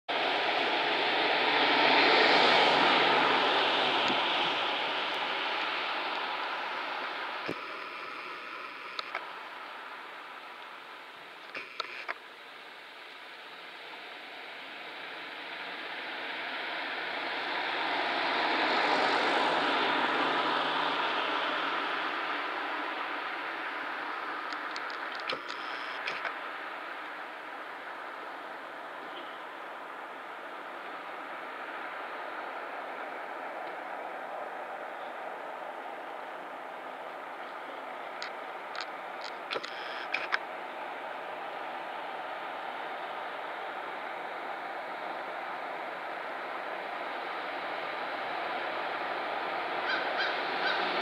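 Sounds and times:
cars passing: 0.1 - 51.0.

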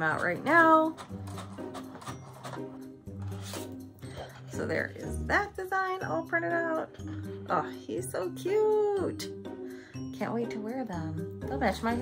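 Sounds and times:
background music with low note: 0.0 - 12.0.

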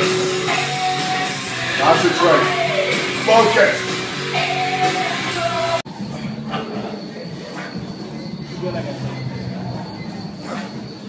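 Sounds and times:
thin high whine: 0.0 - 11.0.

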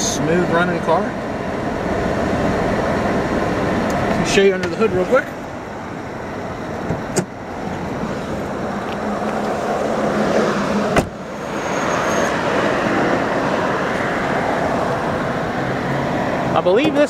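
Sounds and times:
car engine idling: 0.0 - 11.8, 12.4 - 17.0
car door shutting thump: 6.8 - 7.4, 10.9 - 11.2.

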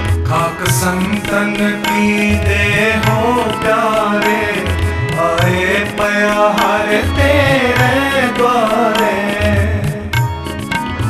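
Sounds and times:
harmonium chords: 0.0 - 11.0
tabla strokes: 0.0 - 11.0
men singing a hymn: 0.3 - 10.2.

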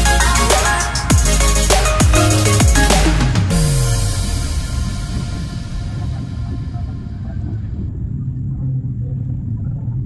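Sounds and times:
background music: 0.0 - 7.6.

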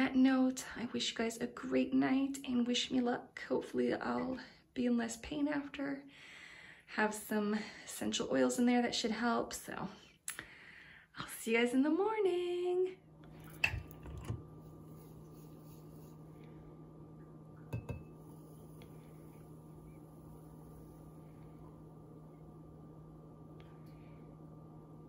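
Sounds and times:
steady low hum: 12.5 - 25.0
clinks and taps of kitchen things: 17.7 - 18.2.

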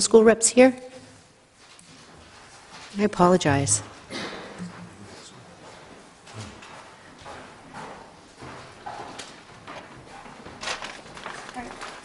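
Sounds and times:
faint footsteps and shuffling: 0.8 - 12.0.

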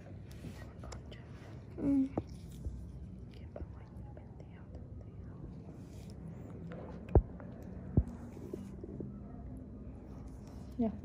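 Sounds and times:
faint whispered speech: 0.0 - 11.0
low room hum: 0.0 - 11.0.

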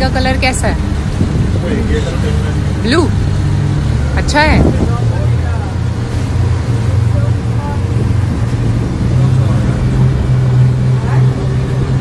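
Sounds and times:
motorboat engine rumble: 0.0 - 12.0.

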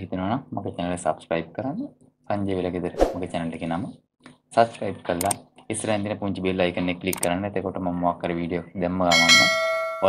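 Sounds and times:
person speaking: 1.1 - 8.8
notification bell ding: 9.2 - 10.0.

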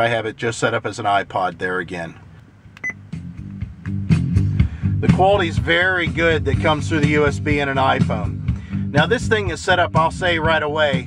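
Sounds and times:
music through car speakers: 2.2 - 11.0.

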